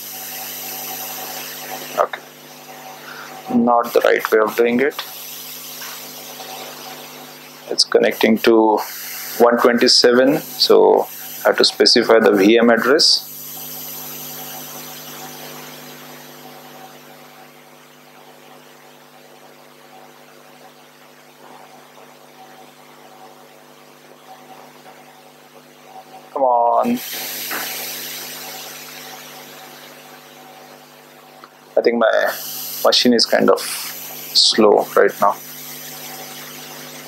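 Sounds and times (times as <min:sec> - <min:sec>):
faint high whine: 0:00.0 - 0:17.4, 0:25.8 - 0:37.0
brief hiss: 0:27.0 - 0:29.8.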